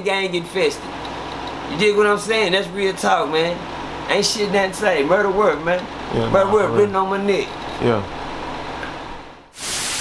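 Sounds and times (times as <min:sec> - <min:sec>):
low room hum: 0:00.0 - 0:09.5
television static hiss: 0:00.0 - 0:10.0.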